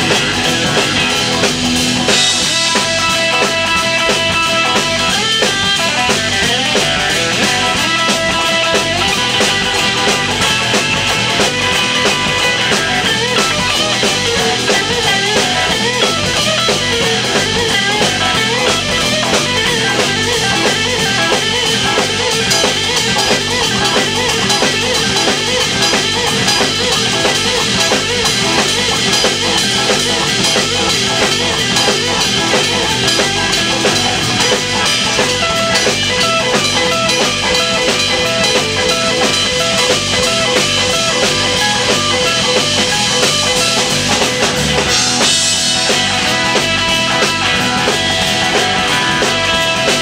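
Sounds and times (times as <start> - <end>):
bass guitar: 0.0 - 50.0
drum kit beat: 0.0 - 50.0
electric guitar lead: 0.0 - 50.0.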